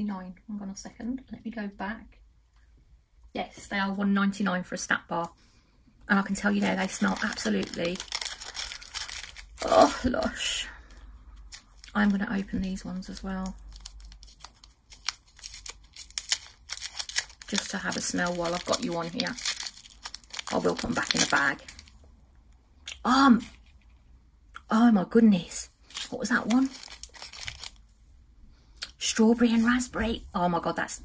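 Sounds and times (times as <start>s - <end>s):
paper wrapper crinkling: 6.1s - 22.1s, 25.8s - 27.9s.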